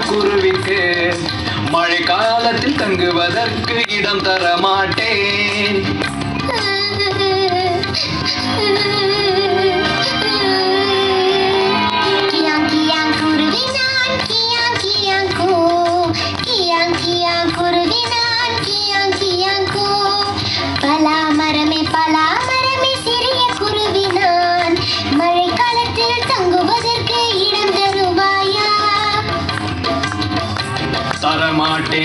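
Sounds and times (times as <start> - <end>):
instrumental backing music: 0.0 - 32.0
child singing: 6.4 - 7.9, 8.5 - 29.3.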